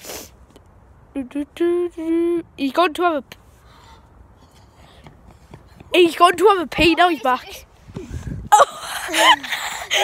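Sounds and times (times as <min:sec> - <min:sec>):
faint background noise: 0:00.0 - 0:10.0
boy talking: 0:01.1 - 0:04.1, 0:05.9 - 0:07.7.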